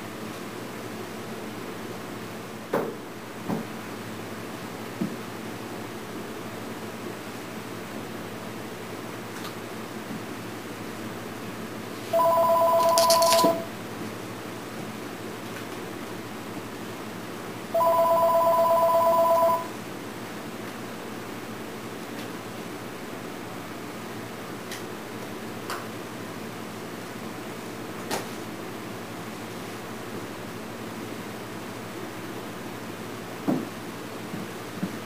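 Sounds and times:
telephone ringing: 0:12.1 - 0:13.7, 0:17.7 - 0:19.8.

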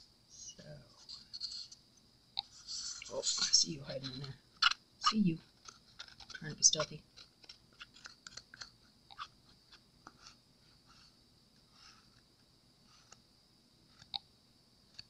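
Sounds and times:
stir stick scraping in cup: 0:05.0 - 0:10.4.

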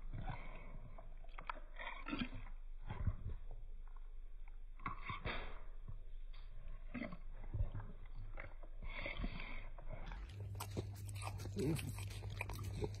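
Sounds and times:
dog chewing crunchy snacks: 0:06.5 - 0:13.0.

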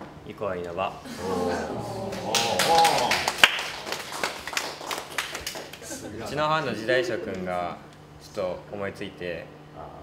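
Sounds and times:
small group clapping: 0:01.8 - 0:06.1.

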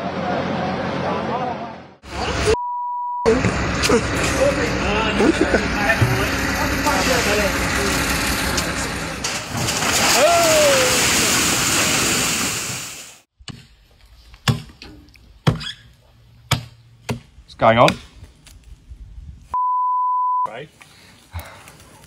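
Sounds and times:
people's voices: 0:00.0 - 0:02.6, 0:03.3 - 0:09.2
person shouting: 0:10.1 - 0:11.1
axe striking a log: 0:14.4 - 0:14.8, 0:15.4 - 0:15.7, 0:16.5 - 0:18.1.

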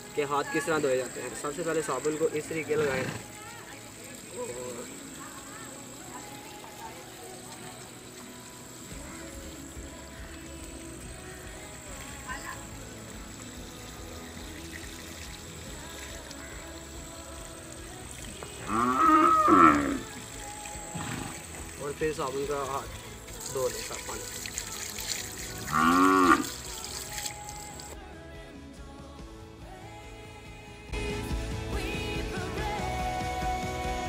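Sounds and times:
cow mooing: 0:18.6 - 0:20.1, 0:25.6 - 0:26.6.

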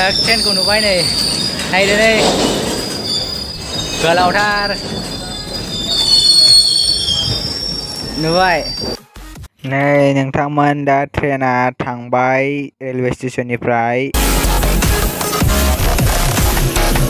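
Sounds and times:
train wheels squealing on rails: 0:00.0 - 0:09.0.

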